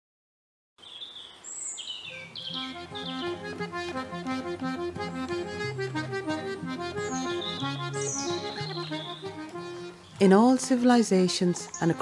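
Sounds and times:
birds chirping: 0.8s - 12.0s
instrumental music over drone: 2.6s - 10.2s.

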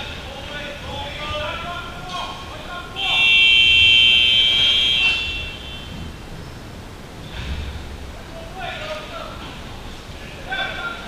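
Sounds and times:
scoreboard buzzer: 3.0s - 5.8s.

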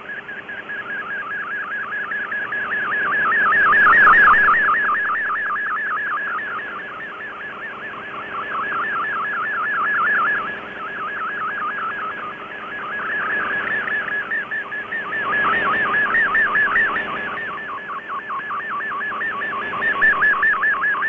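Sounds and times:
warbling digital data tone: 0.0s - 21.0s.

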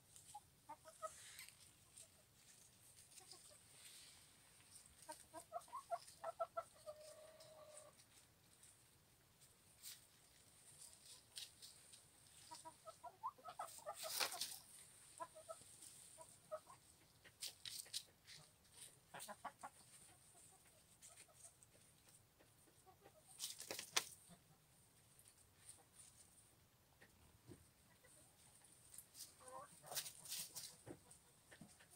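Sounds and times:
chickens clucking softly: 0.0s - 31.9s
sharp rustling: 14.0s - 14.7s.

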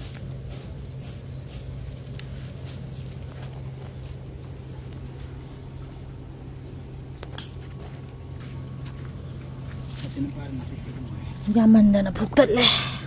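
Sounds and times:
leaves rustling: 0.0s - 12.7s
steady low hum: 0.0s - 13.0s.

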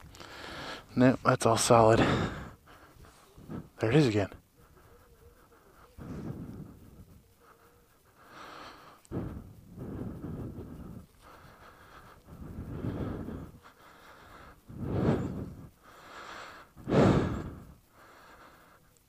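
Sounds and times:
person breathing close: 0.0s - 19.0s.

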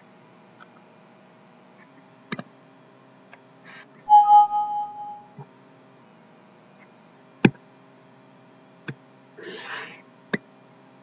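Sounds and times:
two-note electronic chime: 4.1s - 5.3s.

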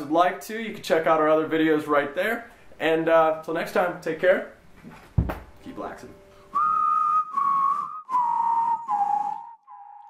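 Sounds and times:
whistled jingle: 6.5s - 10.0s.

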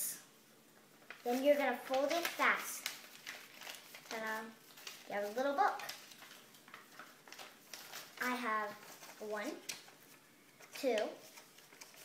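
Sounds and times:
paper rustling and crackling: 1.0s - 12.0s
child counting: 1.3s - 2.8s, 4.1s - 5.9s, 8.2s - 9.7s, 10.7s - 11.2s.

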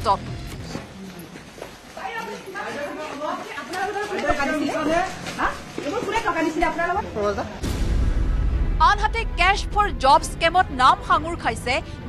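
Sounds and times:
people talking and calling out: 0.0s - 7.7s.

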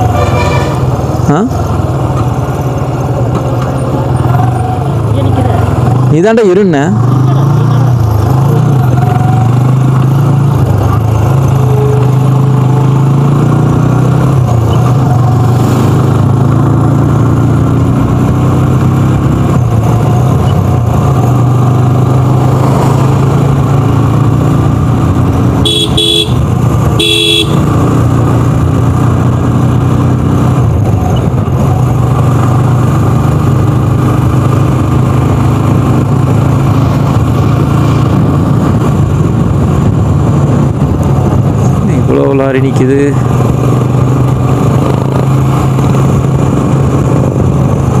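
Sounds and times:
motorcycle engine running: 0.0s - 48.0s
short horn beeps: 25.6s - 26.4s, 27.0s - 27.6s.

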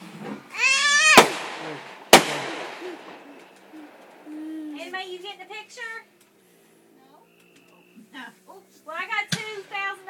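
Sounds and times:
firework bangs: 0.0s - 4.3s.

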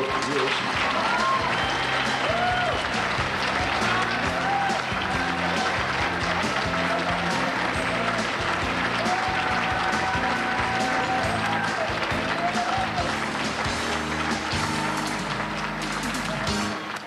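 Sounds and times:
audience applauding: 0.0s - 17.0s.

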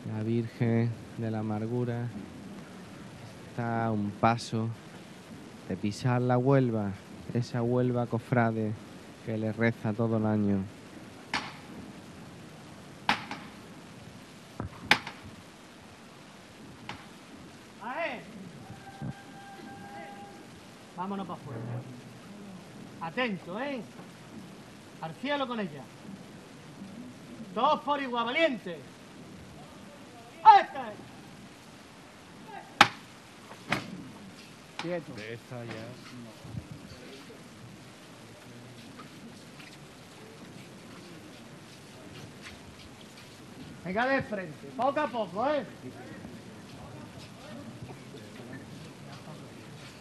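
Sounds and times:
sharp knocks: 11.3s - 11.7s, 13.1s - 13.6s, 14.6s - 15.3s, 32.8s - 33.1s
person shouting: 19.7s - 20.4s, 30.4s - 31.0s, 32.5s - 32.8s.

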